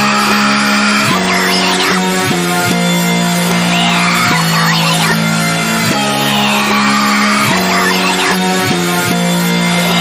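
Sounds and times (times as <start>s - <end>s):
reversed sped-up voice: 1.0s - 2.3s, 3.5s - 8.6s.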